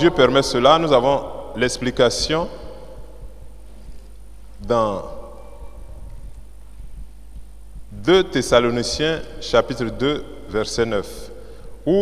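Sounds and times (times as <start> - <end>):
echo of man's voice: 0.0 - 3.4, 4.6 - 5.4, 7.9 - 12.0
low electrical hum: 0.0 - 12.0.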